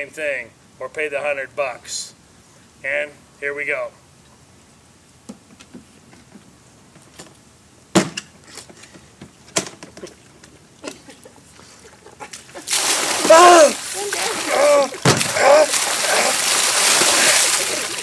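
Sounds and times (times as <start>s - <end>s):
cooler knocks: 8.0s - 8.2s, 15.0s - 15.6s
ice water pouring and splashing: 12.6s - 18.0s
person crying out: 13.1s - 18.0s.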